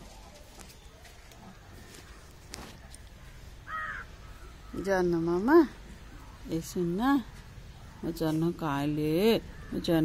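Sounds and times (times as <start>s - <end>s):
faint outdoor background: 0.0s - 10.0s
crow cawing: 3.6s - 5.2s, 9.4s - 10.0s
woman's voice: 4.7s - 7.4s, 8.0s - 10.0s.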